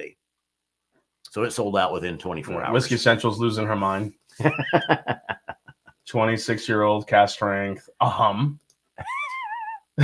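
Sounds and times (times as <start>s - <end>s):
man laughing: 4.4s - 6.0s, 9.0s - 10.0s.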